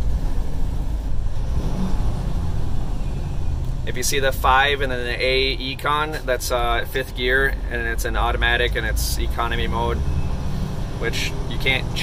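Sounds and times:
diesel truck engine rumble: 0:00.0 - 0:12.0
transmission downshifting: 0:00.0 - 0:12.0.

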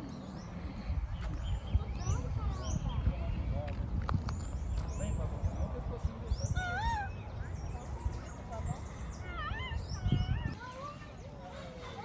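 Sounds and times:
small birds chirping: 0:00.0 - 0:12.0
wind rumbling on microphone: 0:00.0 - 0:12.0.

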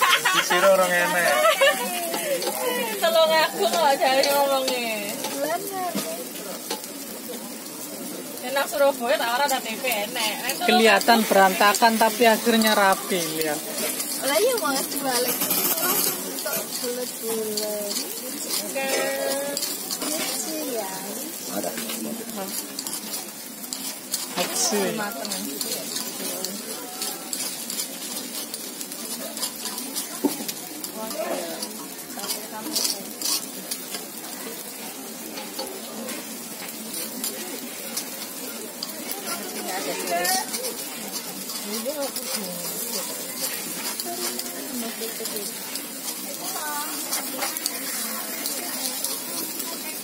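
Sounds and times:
batter sizzling on a hot griddle: 0:00.0 - 0:50.0.

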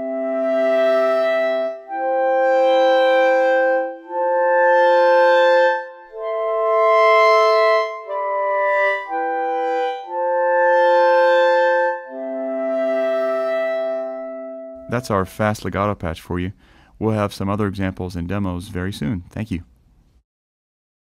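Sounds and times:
clarinet playing sustained chords: 0:00.0 - 0:15.9.

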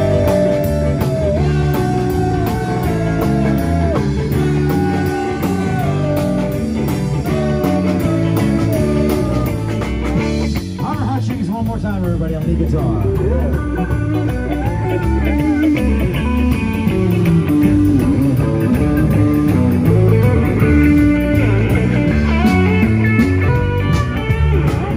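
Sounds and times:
blues rock band playing: 0:00.0 - 0:24.9.

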